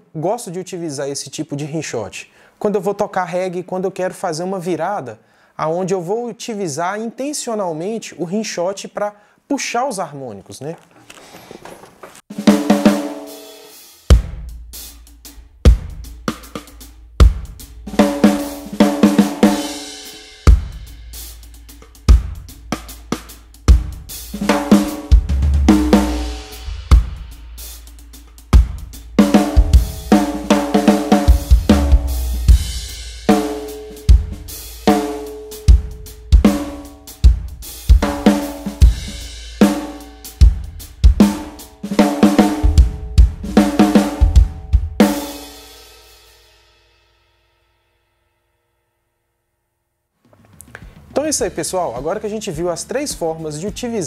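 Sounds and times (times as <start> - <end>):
drum kit groove: 12.1 - 46.4, 50.5 - 54.0.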